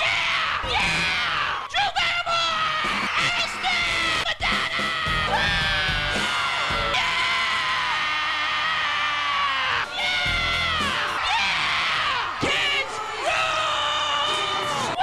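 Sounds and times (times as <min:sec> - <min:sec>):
audience screaming and cheering: 0:02.5 - 0:15.0
music: 0:02.8 - 0:08.0, 0:09.7 - 0:15.0.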